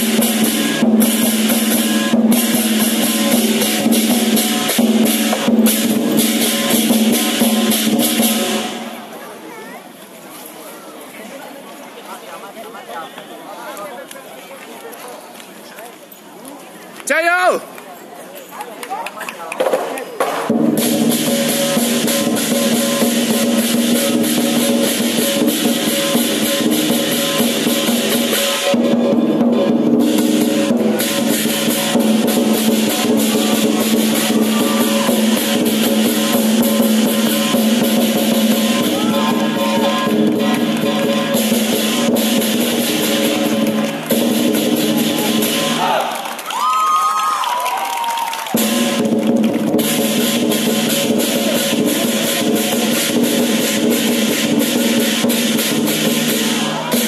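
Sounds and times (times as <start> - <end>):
clashing cymbals: 0.0 - 9.0, 20.5 - 45.9, 48.5 - 57.0
drum fast roll: 0.0 - 9.0, 19.6 - 46.0, 46.6 - 57.0.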